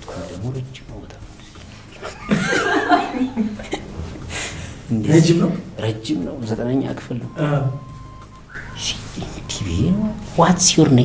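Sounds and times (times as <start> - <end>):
man chuckling and laughing: 2.0 - 5.0.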